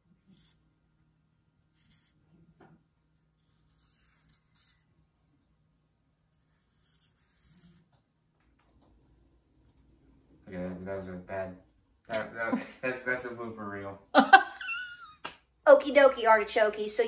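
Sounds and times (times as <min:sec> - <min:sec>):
marker writing on eggshells: 0:00.2 - 0:00.7, 0:01.7 - 0:02.2, 0:03.2 - 0:04.9, 0:06.3 - 0:08.0.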